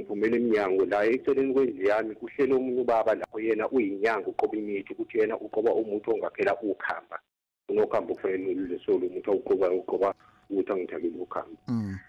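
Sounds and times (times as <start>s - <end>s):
person talking over telephone: 11.4s - 12.0s.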